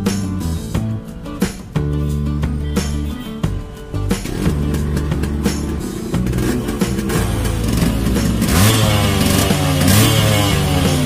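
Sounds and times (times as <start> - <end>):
two-stroke motorcycle engine revving: 4.1 - 11.0.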